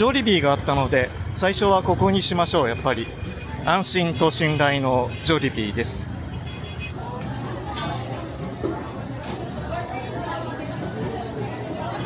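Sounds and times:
faint voices of passers-by: 0.0 - 12.0
vehicles passing: 0.0 - 12.0.

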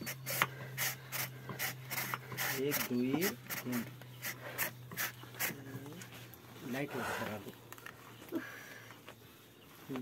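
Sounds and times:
saw rasping through horn: 0.0 - 5.7.

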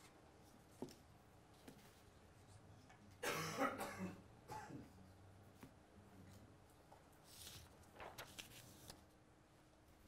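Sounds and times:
person coughing: 3.2 - 4.9.

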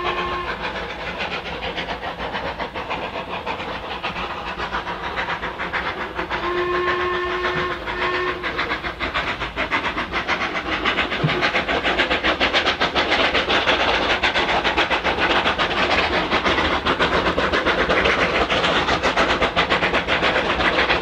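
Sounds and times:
steam locomotive whistle: 0.0 - 0.8, 6.3 - 8.8
steam locomotive exhaust beats: 0.0 - 21.0.

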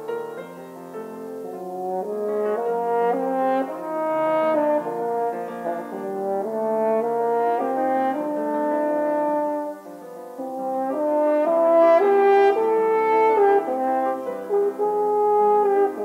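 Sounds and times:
french horn melody: 0.0 - 16.0.

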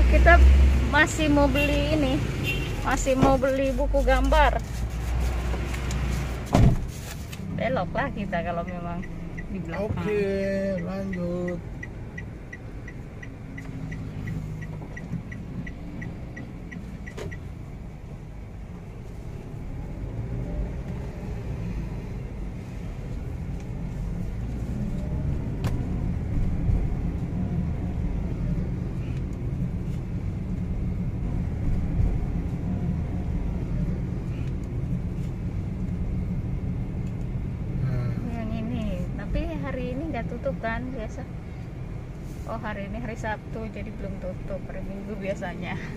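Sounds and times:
car engine and tyre rumble: 0.0 - 45.9
turn indicator ticking: 7.4 - 18.4.

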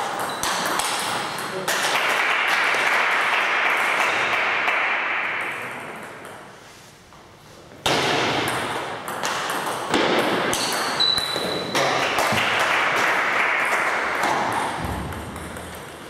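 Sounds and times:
table tennis ball pinging: 0.0 - 2.2, 7.8 - 16.0.

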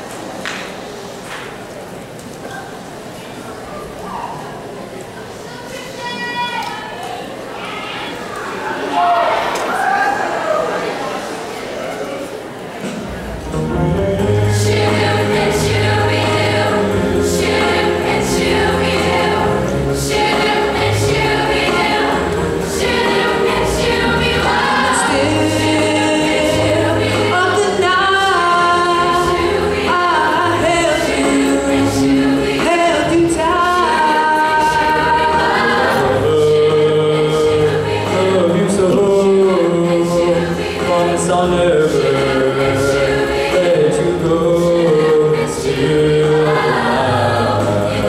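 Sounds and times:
choir singing: 12.9 - 48.0
steady beat: 13.0 - 36.7
low accompaniment notes: 13.0 - 48.0.

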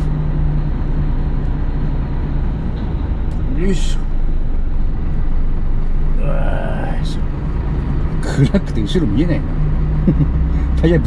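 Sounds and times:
diesel truck engine rumble: 0.0 - 11.0.

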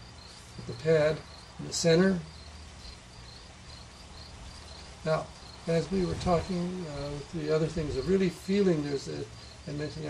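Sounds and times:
steady low hiss: 0.0 - 10.0.

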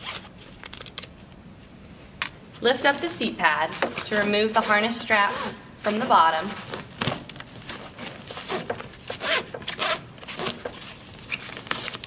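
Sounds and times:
harness straps rustling: 2.6 - 12.0.

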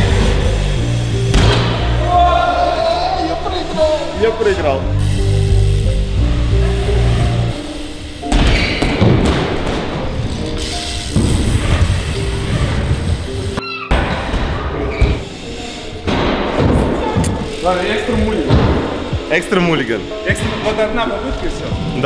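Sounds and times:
bike landing on wooden ramps: 1.2 - 1.9, 8.3 - 13.2, 16.1 - 19.3.

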